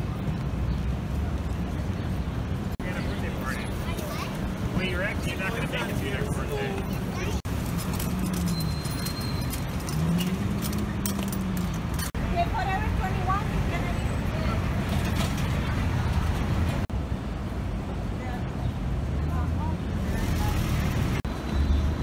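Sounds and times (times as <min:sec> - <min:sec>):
passers-by talking: 0:00.0 - 0:07.6, 0:10.6 - 0:16.9
traffic rumble: 0:00.0 - 0:22.0.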